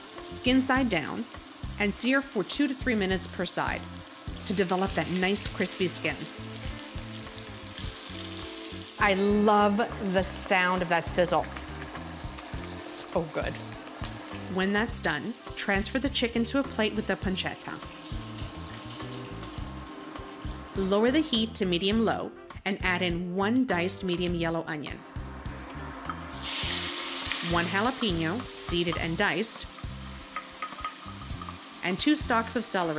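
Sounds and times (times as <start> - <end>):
chicken sizzling in hot oil: 0.0 - 21.5, 26.0 - 32.9
background music with steady beat: 2.8 - 32.8.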